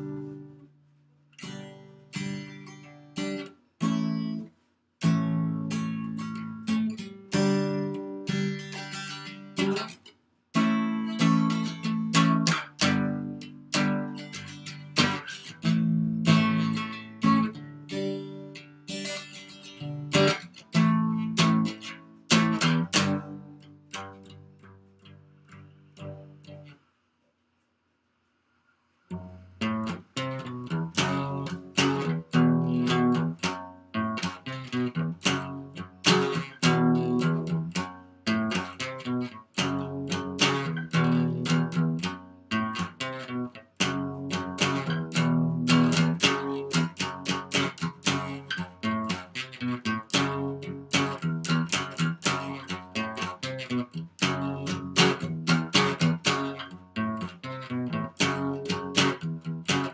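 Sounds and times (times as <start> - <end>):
acoustic guitar: 0.0 - 26.9, 29.0 - 59.9.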